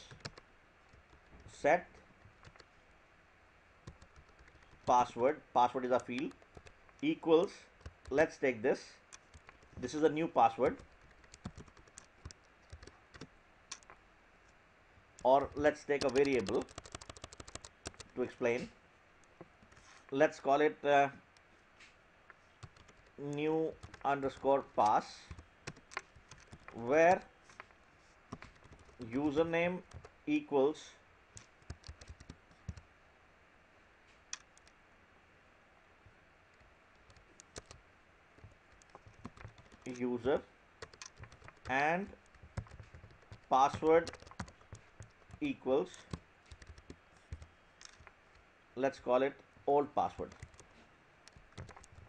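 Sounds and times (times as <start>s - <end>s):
computer keyboard typing: 0.0s - 2.7s, 3.8s - 8.4s, 9.1s - 14.0s, 15.2s - 18.3s, 22.6s - 27.7s, 28.3s - 30.2s, 31.4s - 32.9s, 34.4s - 34.8s, 36.6s - 37.8s, 38.4s - 48.4s, 50.0s - 52.0s
computer keyboard keystroke click: 15.2s - 18.1s, 31.4s - 32.8s, 40.8s - 45.4s, 51.3s - 52.0s.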